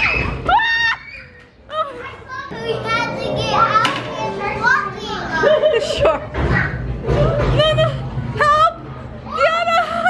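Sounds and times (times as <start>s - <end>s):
children calling out and chattering: 0.0s - 10.0s.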